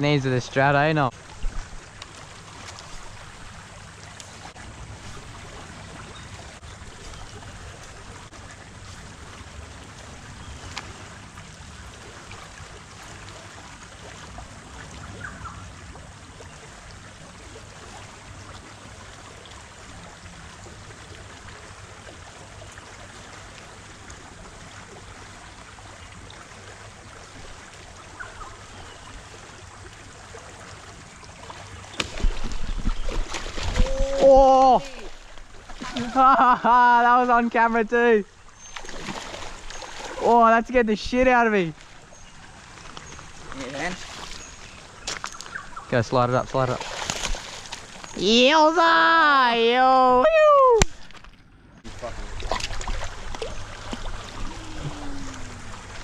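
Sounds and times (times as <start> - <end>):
creek water hiss: 0.0 - 48.6, 51.9 - 56.0
fish splashing at surface: 31.5 - 36.2, 38.7 - 40.3, 46.7 - 48.2
wind on microphone: 32.2 - 35.0.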